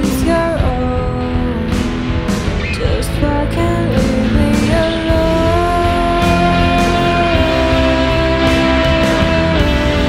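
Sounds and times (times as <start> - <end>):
bass guitar: 0.0 - 10.0
drums: 0.0 - 10.0
electric guitar rock music: 0.0 - 10.0.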